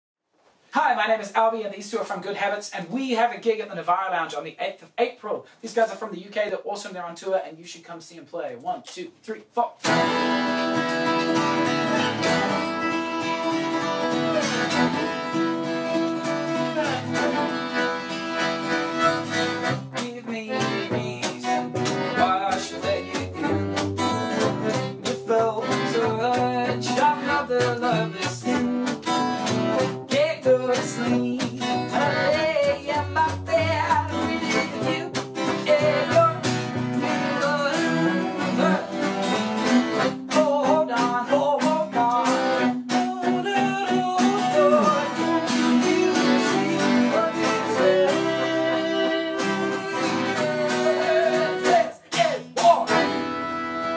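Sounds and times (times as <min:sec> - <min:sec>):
strummed acoustic guitar: 0:09.8 - 0:53.9
piano accordion: 0:09.9 - 0:30.0, 0:31.8 - 0:40.2, 0:44.5 - 0:51.8, 0:53.0 - 0:53.9.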